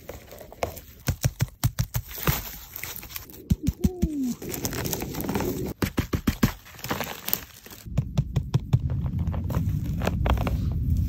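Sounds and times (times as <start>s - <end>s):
rustling crunch: 0.0s - 11.0s.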